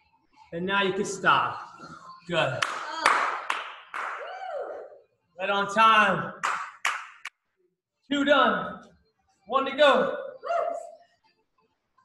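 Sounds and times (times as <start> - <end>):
sharp hand claps: 2.6 - 4.3, 6.4 - 7.4.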